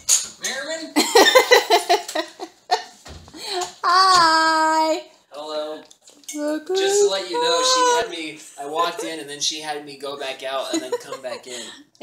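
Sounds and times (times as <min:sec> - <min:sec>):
high voice calling sing-song greeting: 0:06.6 - 0:08.2.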